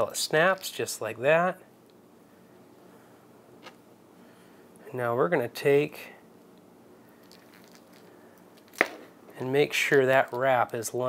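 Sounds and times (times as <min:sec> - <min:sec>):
fingers handling fishing bait: 0:07.2 - 0:09.0.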